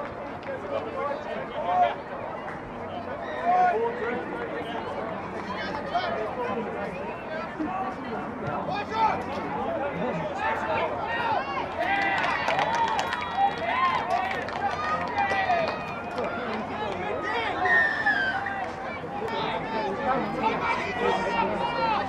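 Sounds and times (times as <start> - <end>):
voices shouting and calling: 0.7 - 22.0.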